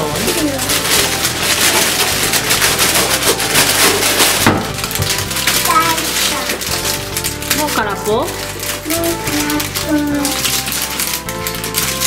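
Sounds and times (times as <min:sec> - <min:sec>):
background music: 0:00.0 - 0:12.0
wrapped sweets crinkling: 0:00.0 - 0:12.0.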